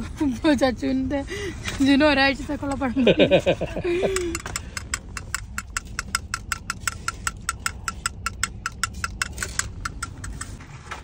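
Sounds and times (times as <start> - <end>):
quick even ticking: 4.1 - 10.6.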